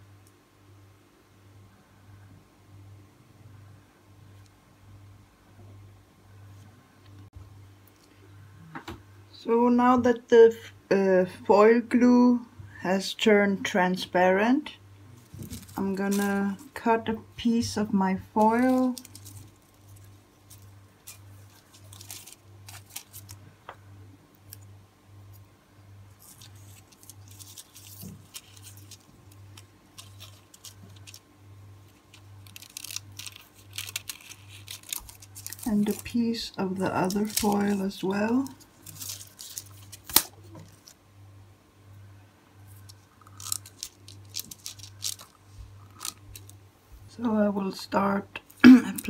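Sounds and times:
faint low hum: 0.0 - 49.0
metallic foil crinkling: 15.2 - 16.9, 17.5 - 23.5, 26.1 - 41.0, 42.7 - 46.6.

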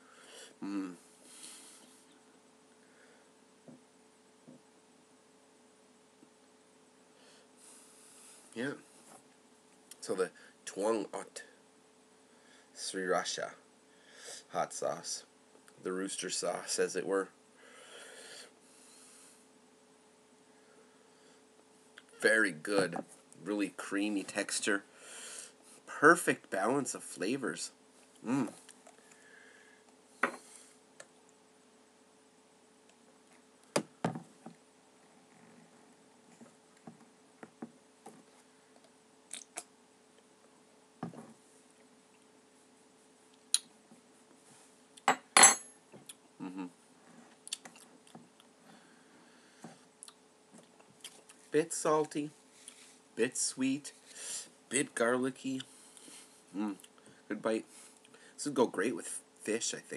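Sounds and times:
tableware clinking: 45.1 - 45.7
man breathing faintly: 48.6 - 49.9.

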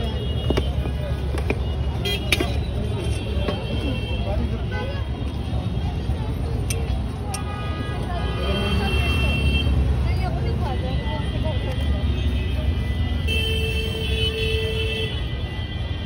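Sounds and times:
traffic rumble: 0.0 - 16.0.

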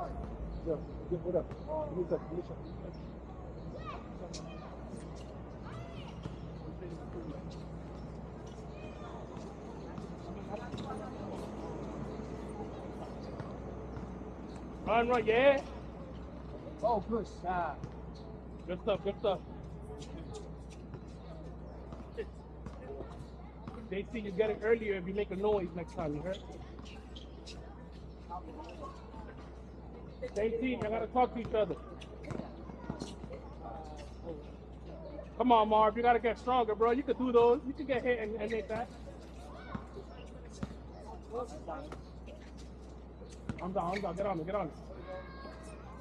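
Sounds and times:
distant players' voices: 0.0 - 46.0
basketball bouncing on court: 30.8 - 33.3.

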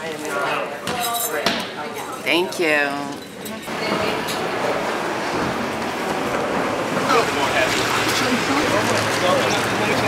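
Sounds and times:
traffic hiss on wet pavement: 4.4 - 10.0.

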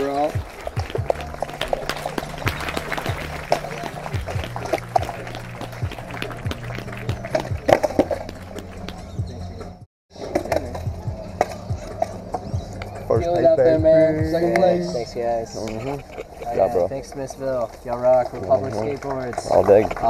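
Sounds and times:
music with steady bass line: 0.0 - 9.8, 10.5 - 14.5
sharp clacks and knocks: 0.3 - 9.2.

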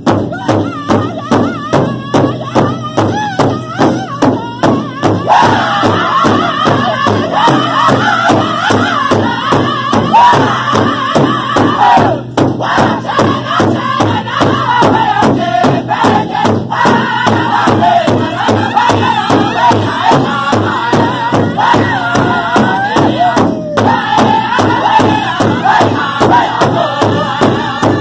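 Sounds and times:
large hand drum beaten in unison: 0.0 - 28.0
group singing high chorus: 0.2 - 28.0
lead voice singing high: 0.2 - 28.0.

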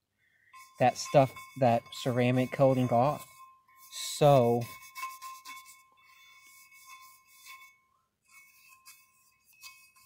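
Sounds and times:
wire brush scrubbing metal: 0.5 - 10.0.

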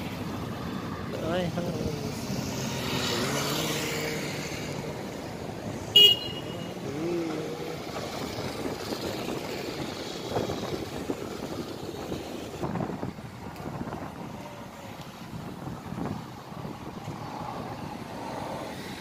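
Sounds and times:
car passing: 0.0 - 19.0
short horn beep: 6.0 - 6.8.

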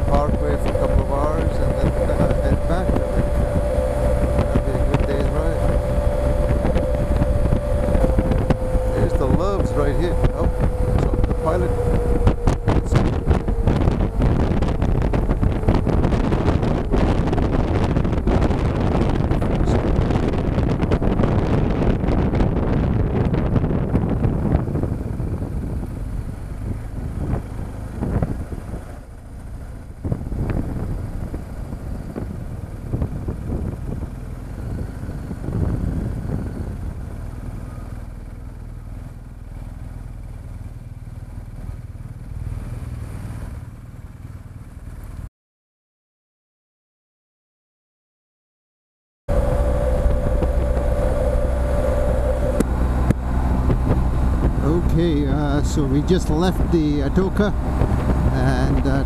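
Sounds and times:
wind rushing over microphone: 0.0 - 39.0, 49.3 - 59.0
motorcycle engine: 0.0 - 45.3, 49.3 - 59.0.

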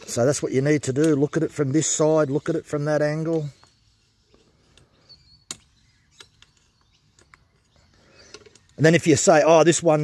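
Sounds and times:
bird chirp: 0.0 - 10.0.

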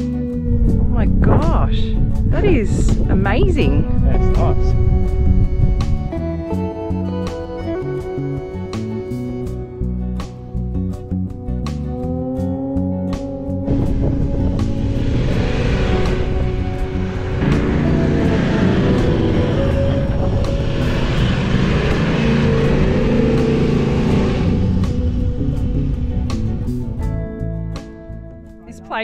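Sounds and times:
engine and tyre rumble: 0.0 - 28.6
background music: 0.0 - 29.0.

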